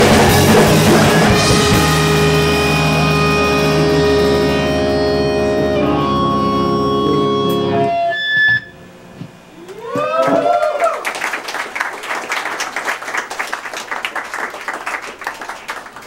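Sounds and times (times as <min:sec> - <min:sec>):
rock band held chord ringing: 0:00.0 - 0:08.9.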